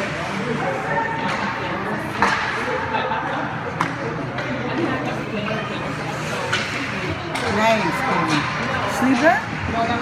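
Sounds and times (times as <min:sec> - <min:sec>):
spectators talking: 0:00.0 - 0:10.0
hockey stick cracking puck: 0:02.2 - 0:02.6.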